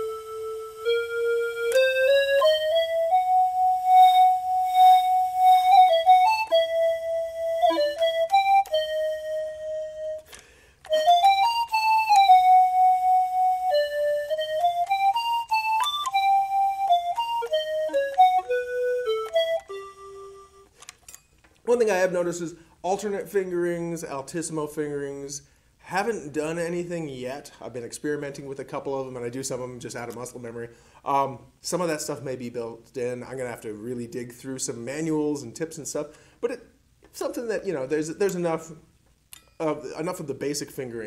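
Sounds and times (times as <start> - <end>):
digital wind instrument melody: 0.0 - 20.7.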